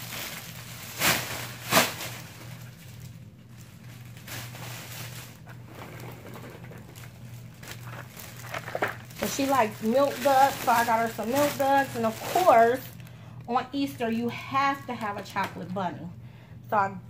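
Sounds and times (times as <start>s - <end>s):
cellophane bag crinkling: 0.0s - 13.4s
cellophane rustling: 0.0s - 14.1s.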